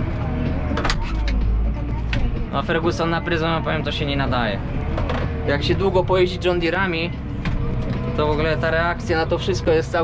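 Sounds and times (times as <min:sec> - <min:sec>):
tractor engine rumbling: 0:00.0 - 0:10.0.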